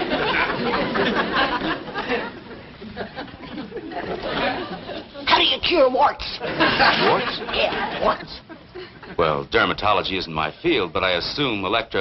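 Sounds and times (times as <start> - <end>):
studio audience laughter: 0.0 - 5.2, 6.4 - 9.2.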